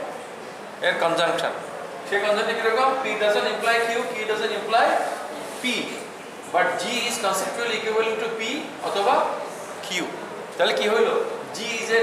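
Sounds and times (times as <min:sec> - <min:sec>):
man talking: 0:00.8 - 0:12.0.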